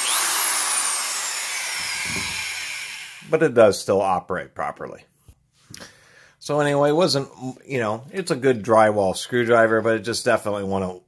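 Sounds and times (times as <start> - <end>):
drywall screwdriver motor whine: 0.0 - 3.3.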